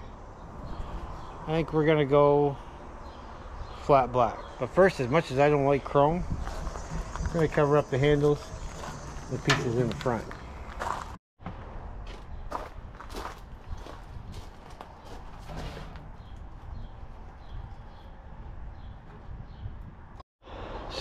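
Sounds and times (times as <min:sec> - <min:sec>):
shoes shifting on gravel: 0:08.2 - 0:11.2.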